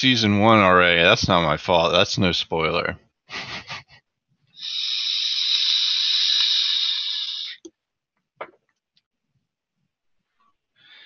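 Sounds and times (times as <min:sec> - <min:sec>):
person blowing out a breath: 0:04.6 - 0:07.6.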